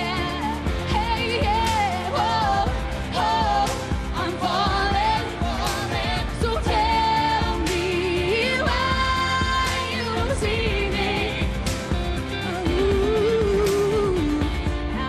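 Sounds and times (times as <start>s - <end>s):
drums steady beat: 0.0s - 15.0s
woman singing pop song: 0.0s - 15.0s.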